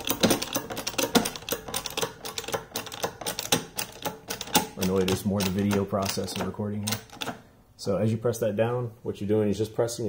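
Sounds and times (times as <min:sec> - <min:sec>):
shop press clicking: 0:00.0 - 0:07.5.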